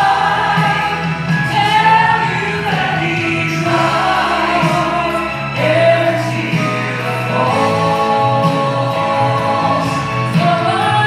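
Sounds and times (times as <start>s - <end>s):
instrumental accompaniment: 0.0s - 11.0s
woman singing gospel song: 0.0s - 11.0s.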